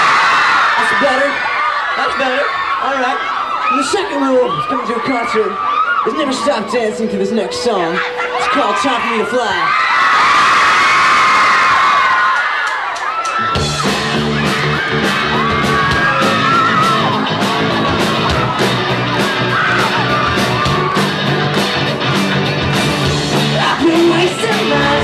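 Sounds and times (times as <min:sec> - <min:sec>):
crowd screaming: 0:00.0 - 0:25.0
live pop-rock band: 0:13.2 - 0:25.0.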